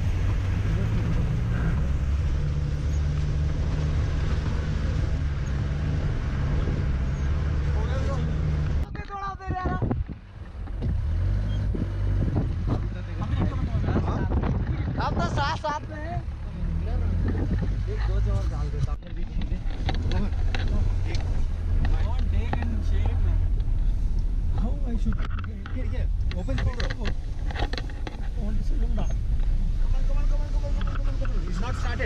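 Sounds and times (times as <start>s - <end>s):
vehicle rumble on gravel road: 0.0s - 32.0s
voices: 12.7s - 32.0s.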